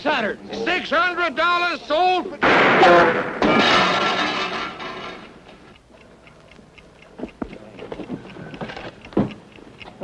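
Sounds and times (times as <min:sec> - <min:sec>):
loud burst of noise: 0:02.4 - 0:03.8
alarm clock ticking: 0:04.6 - 0:10.0.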